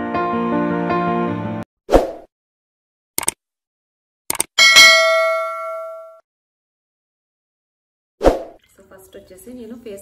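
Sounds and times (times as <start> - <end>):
notification bell ding: 4.6 - 6.2.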